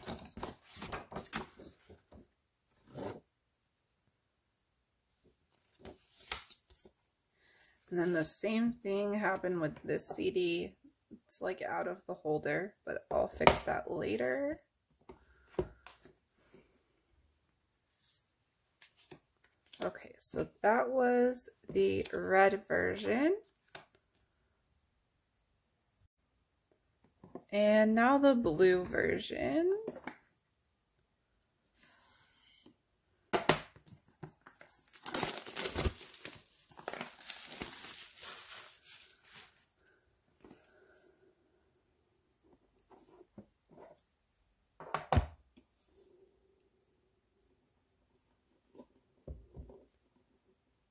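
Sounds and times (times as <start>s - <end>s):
cardboard rustling: 0.0s - 3.2s, 34.2s - 39.8s
plastic wrap crinkling: 34.4s - 40.0s
plastic shrink wrap ripping: 34.8s - 39.8s.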